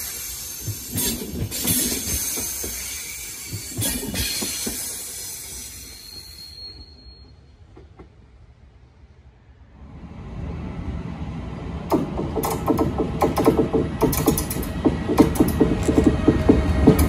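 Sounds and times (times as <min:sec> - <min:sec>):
approaching locomotive rumble: 0:00.0 - 0:17.0
train rumbling: 0:00.0 - 0:17.0
sharp knocks and clanks: 0:11.9 - 0:17.0.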